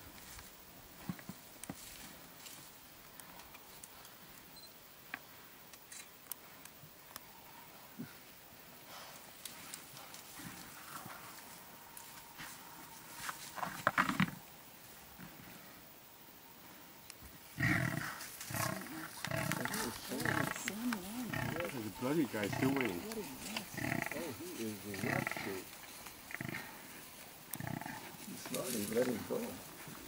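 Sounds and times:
deep buffalo calls: 0:17.6 - 0:28.2.

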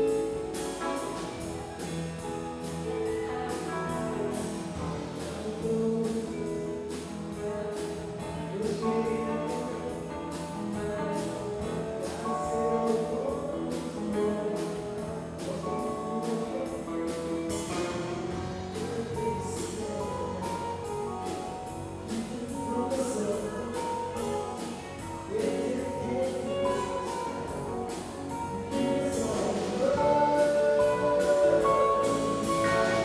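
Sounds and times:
drum kit with cymbals: 0:00.0 - 0:33.0
electric guitar: 0:00.0 - 0:33.0
keyboard: 0:00.0 - 0:33.0.

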